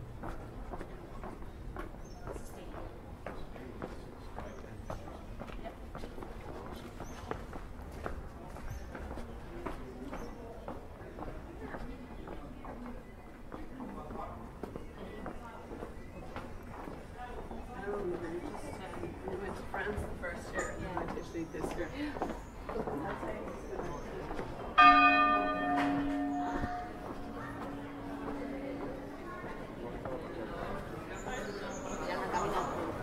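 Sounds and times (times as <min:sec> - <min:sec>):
footsteps on cobblestones: 0:00.0 - 0:33.0
people talking faintly: 0:00.0 - 0:33.0.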